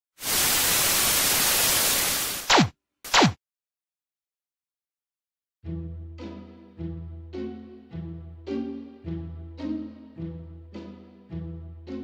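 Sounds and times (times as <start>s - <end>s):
tv static hiss: 0.2s - 2.6s.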